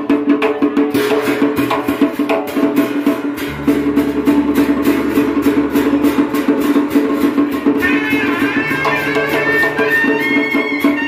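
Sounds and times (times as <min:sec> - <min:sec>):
clacking percussion beat: 0:00.0 - 0:11.0
drums: 0:00.0 - 0:11.0
plucked strings: 0:02.7 - 0:10.4
deep held bass note: 0:03.3 - 0:10.3.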